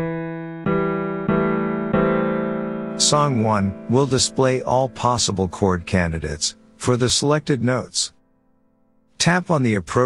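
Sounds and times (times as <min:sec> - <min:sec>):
virtual piano notes: 0:00.0 - 0:09.2.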